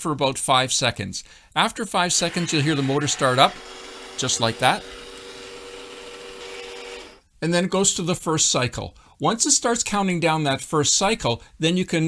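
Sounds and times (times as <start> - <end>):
valve drive motor humming: 2.2 - 7.2.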